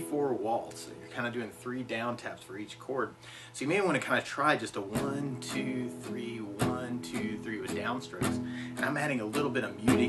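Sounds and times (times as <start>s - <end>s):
muted acoustic guitar strumming: 0.0s - 10.0s.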